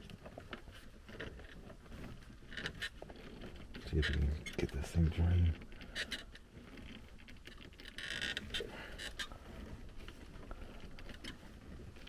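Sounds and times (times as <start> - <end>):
hands rustling among wiring: 0.0 - 12.0.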